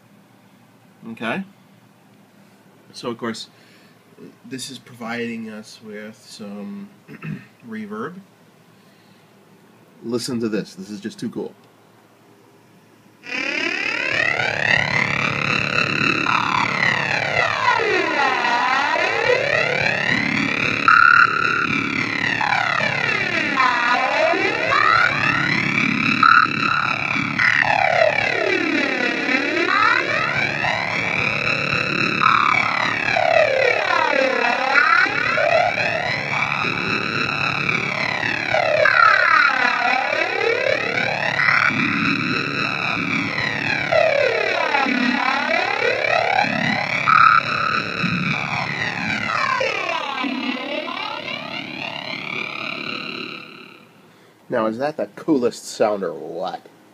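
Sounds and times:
synthesizer drone sweeping: 13.2s - 54.2s.

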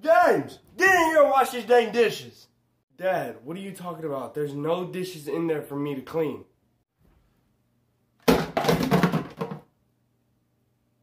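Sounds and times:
plastic dishes clattering in sink: 8.2s - 9.7s.

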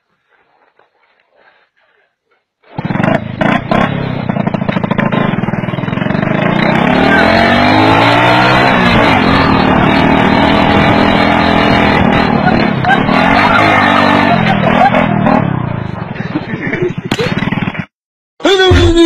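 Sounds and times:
vehicle engine revving: 2.7s - 16.2s.

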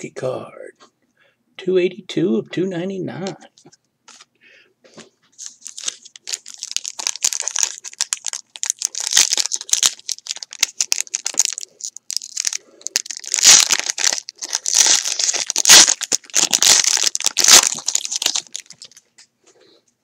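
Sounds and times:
foil pack crinkling and tearing: 5.4s - 19.0s.

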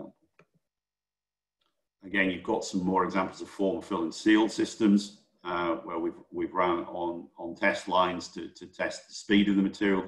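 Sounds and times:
man speaking: 2.0s - 10.0s.

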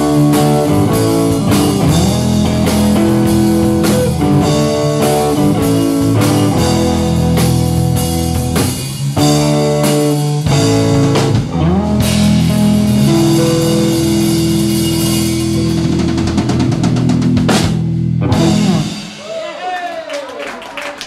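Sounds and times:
drum roll and cymbals: 0.0s - 11.5s
blues band playing: 0.0s - 19.5s.

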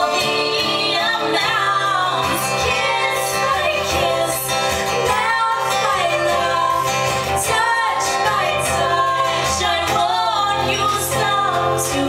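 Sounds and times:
acoustic guitar: 0.0s - 12.0s
woman singing: 0.0s - 12.0s.

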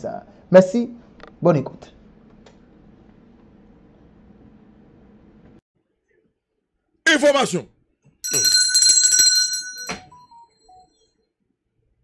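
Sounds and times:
bell-like ringing tones: 8.2s - 11.0s.

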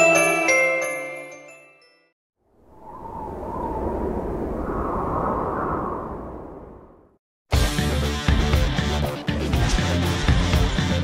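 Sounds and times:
rushing wind-like whoosh: 2.5s - 7.2s.

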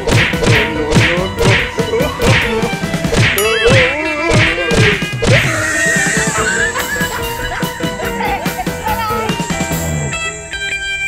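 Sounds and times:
sharp whacking hits: 0.0s - 5.5s
pitched tones: 3.4s - 11.0s.

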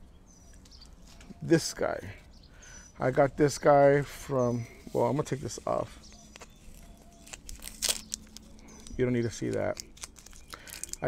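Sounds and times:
soft clicks and crackles: 6.0s - 11.0s
crunchy snap: 6.1s - 11.0s.

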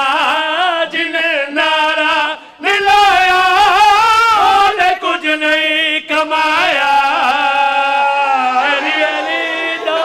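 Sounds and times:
man chanting through microphone: 0.0s - 9.9s.

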